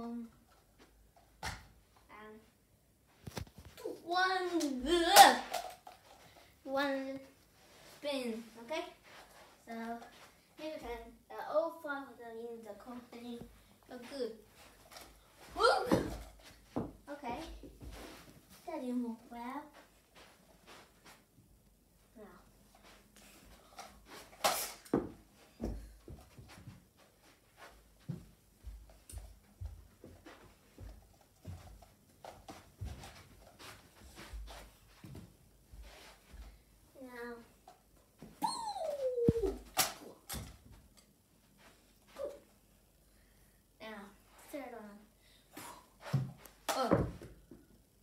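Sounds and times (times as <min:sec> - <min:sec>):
child vocal sounds: 0:38.4 - 0:40.2.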